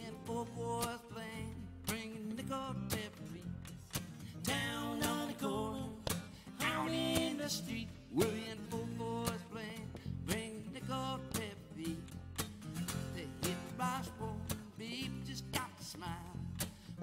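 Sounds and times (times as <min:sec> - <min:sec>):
strummed acoustic guitar: 0:00.0 - 0:17.0.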